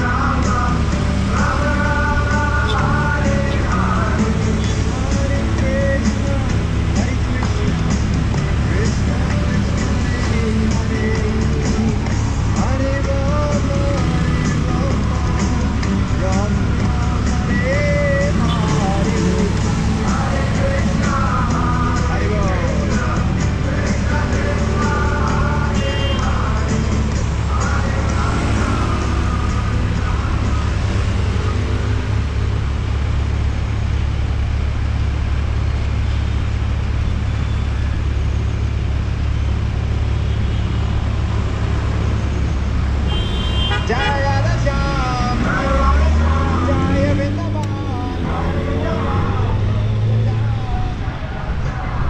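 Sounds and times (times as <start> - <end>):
engines revving pulling away: 0.0 - 52.0
idling vehicle engines: 0.0 - 52.0
voices: 43.8 - 52.0.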